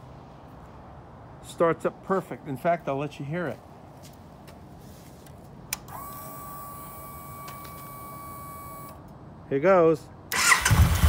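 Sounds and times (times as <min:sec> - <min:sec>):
fuel pump electric whine: 0:05.7 - 0:09.0.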